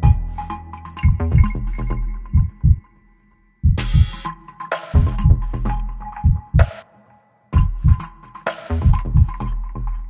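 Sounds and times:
music with thumping beat: 0:00.0 - 0:02.9, 0:03.6 - 0:06.9, 0:07.5 - 0:10.0.

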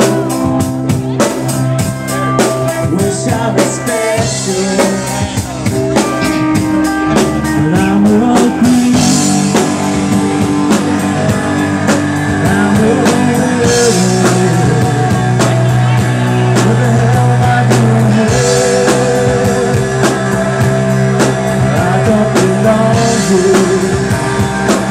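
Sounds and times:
bass guitar: 0:00.0 - 0:24.9
drum kit steady beat: 0:00.0 - 0:24.9
electric guitars: 0:00.0 - 0:24.9.

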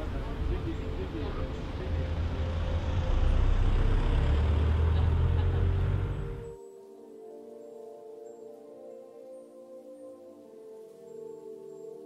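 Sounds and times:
passing vehicles rumbling: 0:00.0 - 0:06.6
faint background music: 0:00.0 - 0:12.0.

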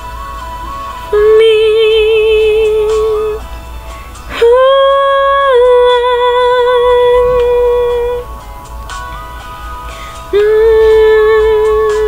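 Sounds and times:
woman singing sustained note: 0:01.0 - 0:03.4, 0:04.3 - 0:08.3, 0:10.3 - 0:12.0.

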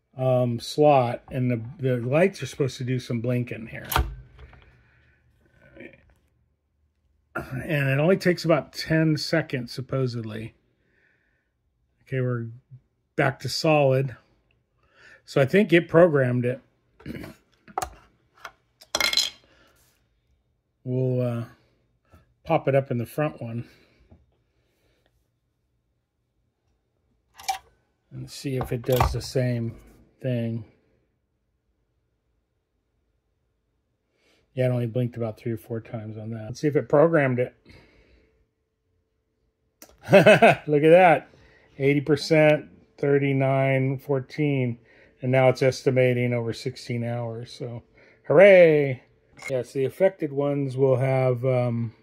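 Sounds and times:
faint handling noise: 0:28.4 - 0:30.0.

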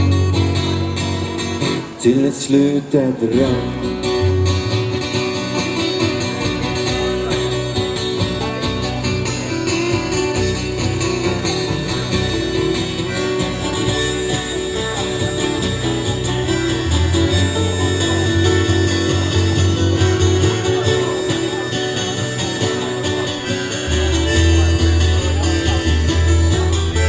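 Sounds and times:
bass line: 0:00.0 - 0:27.0
strummed acoustic guitars: 0:00.0 - 0:27.0
harmonica melody: 0:09.2 - 0:27.0.

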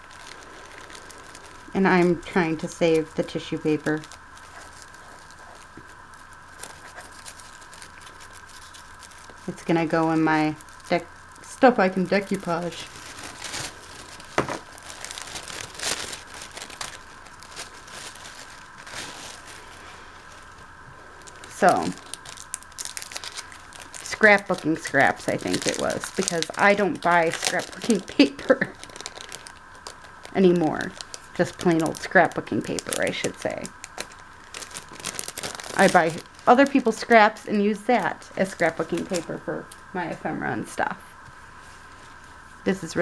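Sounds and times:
low steady hum: 0:00.0 - 0:43.0
paper rustling: 0:02.8 - 0:10.9, 0:12.1 - 0:37.1.

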